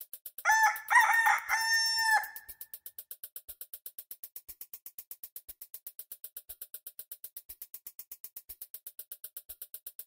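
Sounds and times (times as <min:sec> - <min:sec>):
fast even ticking: 0:00.0 - 0:10.0
rooster crowing: 0:00.5 - 0:02.5.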